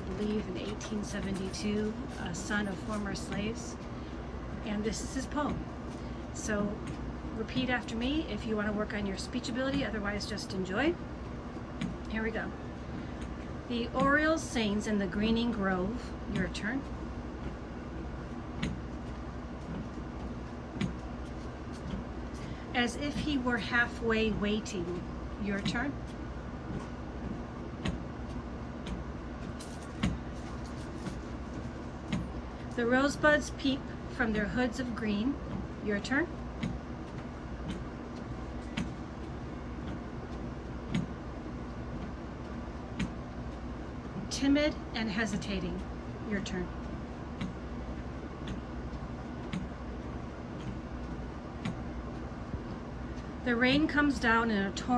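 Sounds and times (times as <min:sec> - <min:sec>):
low outdoor rumble: 0:00.0 - 0:54.9.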